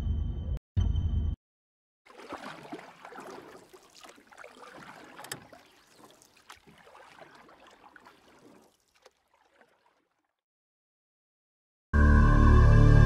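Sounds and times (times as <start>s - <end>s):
small splashes: 2.1s - 10.4s
water sloshing and bubbling: 2.1s - 10.4s.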